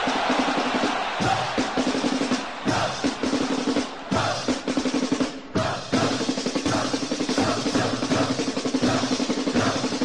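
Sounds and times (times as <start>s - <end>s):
snare drum rolls: 0.0s - 10.0s.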